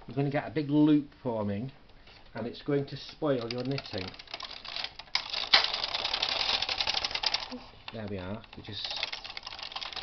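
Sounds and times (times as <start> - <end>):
knitting machine carriage clicking: 3.1 - 10.0.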